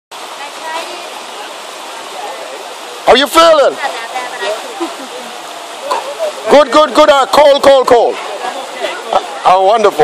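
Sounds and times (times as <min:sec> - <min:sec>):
river water rushing over rocks: 0:00.1 - 0:10.0
faint voices: 0:00.2 - 0:10.0.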